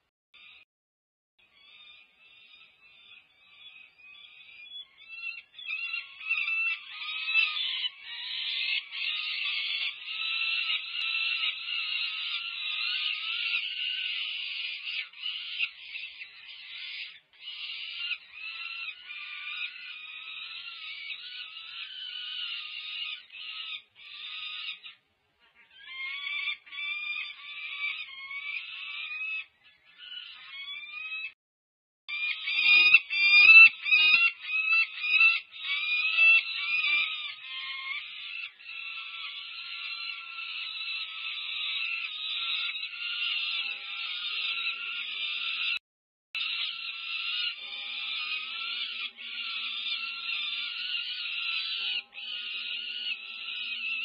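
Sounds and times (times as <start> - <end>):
falcon chicks begging calls: 5.2 - 25.0, 25.7 - 31.3, 32.1 - 45.8, 46.4 - 54.0.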